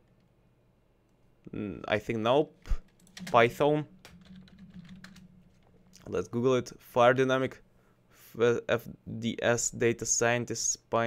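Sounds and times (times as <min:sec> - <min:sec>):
typing on keyboard: 0:02.9 - 0:05.7.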